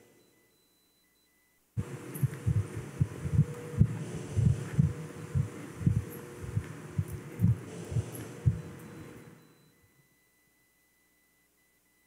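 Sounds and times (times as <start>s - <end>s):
steady low hum: 0.0s - 12.0s
dull low thumps: 1.8s - 8.8s.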